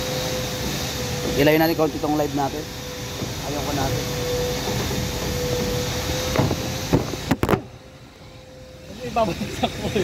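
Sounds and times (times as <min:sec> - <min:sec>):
thin constant hum: 0:00.0 - 0:10.0.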